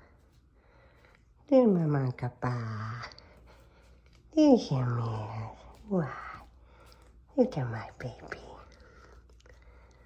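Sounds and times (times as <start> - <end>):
person speaking: 4.2 - 6.6.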